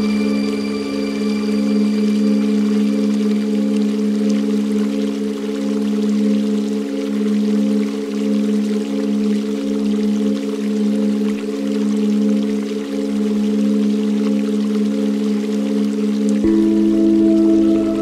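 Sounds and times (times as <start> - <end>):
drone of bowl-like tones: 0.0 - 18.0.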